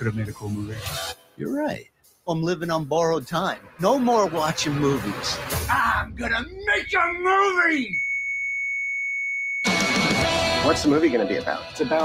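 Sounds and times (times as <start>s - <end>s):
loud music: 2.4s - 6.8s, 9.6s - 12.0s.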